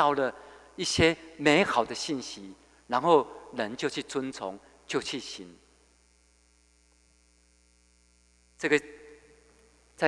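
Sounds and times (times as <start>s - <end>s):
man speaking: 0.0s - 5.6s, 8.6s - 9.2s
faint electrical mains hum: 0.0s - 10.0s.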